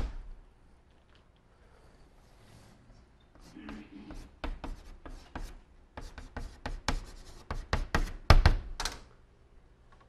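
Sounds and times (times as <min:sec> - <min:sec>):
chalk tapping and scraping on blackboard: 0:03.4 - 0:08.6.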